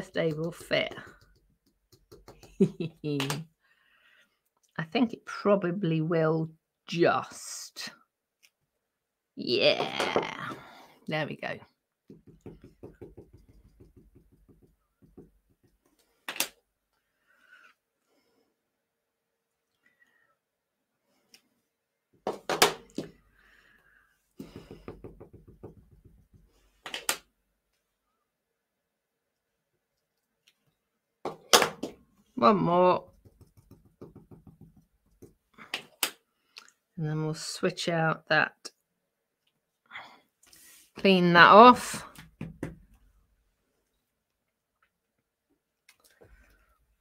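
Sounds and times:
acrylic block knocking on card: 12.1 - 15.8, 33.1 - 35.4
ink pad tapping on stamp: 12.1 - 15.8, 33.1 - 35.4.

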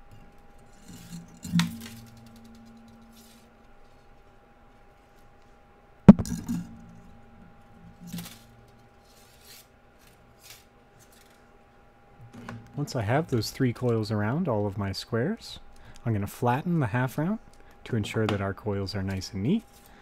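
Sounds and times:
wire being coiled by hand: 0.1 - 4.0, 7.9 - 11.5.

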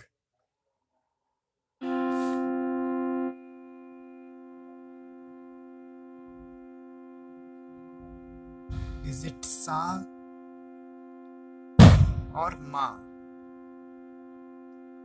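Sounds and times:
electronic keyboard held note: 1.8 - 15.0.

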